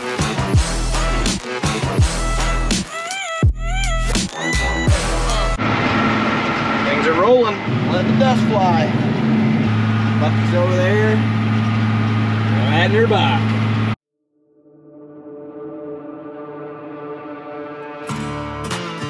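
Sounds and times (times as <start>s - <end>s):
music: 0.0s - 5.6s, 14.6s - 19.0s
wavering voice-like sounds: 2.2s - 5.6s
tractor engine running: 5.0s - 14.0s.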